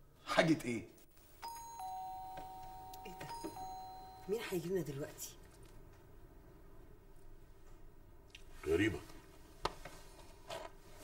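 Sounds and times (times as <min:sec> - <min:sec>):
two-tone doorbell chime: 0:01.4 - 0:04.7.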